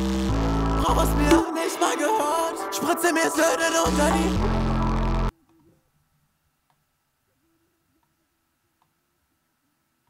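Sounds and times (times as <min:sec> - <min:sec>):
hip-hop track with heavy bass: 0:00.0 - 0:05.3.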